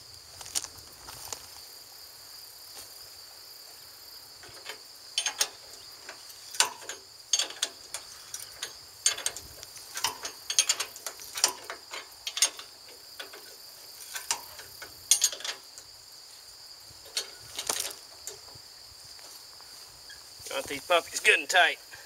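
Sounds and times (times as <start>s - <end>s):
insects droning: 0.0s - 22.0s
ratchet wrench clicking: 6.5s - 15.5s.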